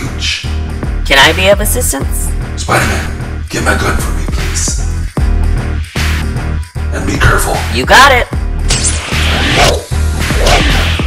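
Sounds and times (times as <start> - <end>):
background music with bass beat: 0.0 - 11.0
whooshing sound effects: 8.7 - 11.0.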